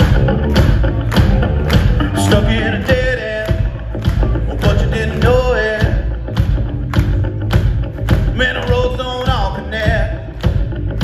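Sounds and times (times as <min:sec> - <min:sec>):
drum beat: 0:00.0 - 0:11.0
live rock band playing: 0:00.0 - 0:11.0.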